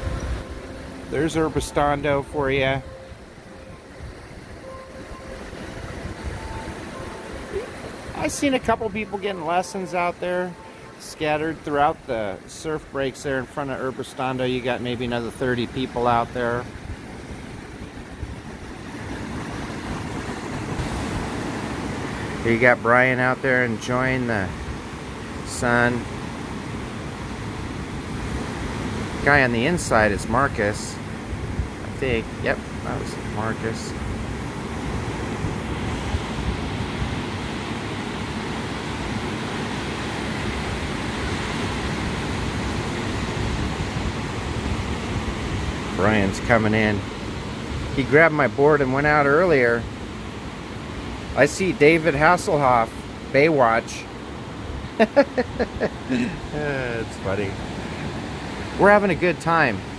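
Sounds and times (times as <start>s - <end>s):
wind rumbling on microphone: 0.0s - 9.1s, 15.8s - 22.5s, 29.9s - 48.0s
waves breaking on shore: 0.0s - 59.9s.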